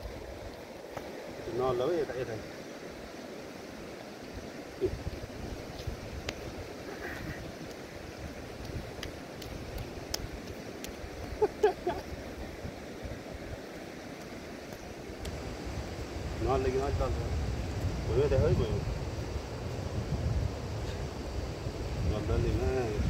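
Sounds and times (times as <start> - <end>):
wind buffeting microphone: 4.4 - 23.0
faint clicks: 8.6 - 11.4.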